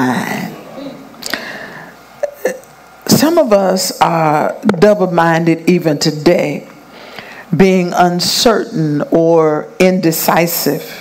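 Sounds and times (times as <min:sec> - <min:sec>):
speech echo in a hall: 0:00.0 - 0:11.0.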